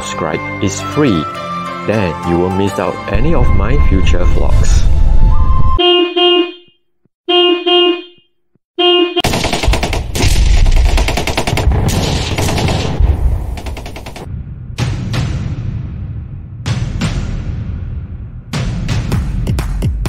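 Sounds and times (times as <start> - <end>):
fast machine-gun rattle: 9.3 - 14.3.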